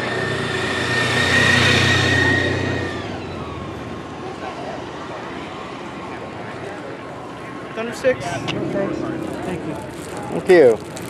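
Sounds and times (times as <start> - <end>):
motorcycle passing by: 0.0 - 5.6, 7.6 - 11.0.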